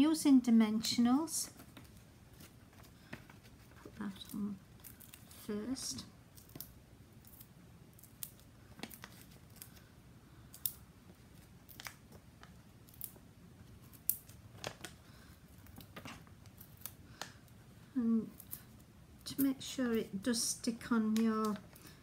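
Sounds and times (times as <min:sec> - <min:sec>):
paper clicks and crinkles: 0:08.0 - 0:09.9, 0:10.6 - 0:17.5.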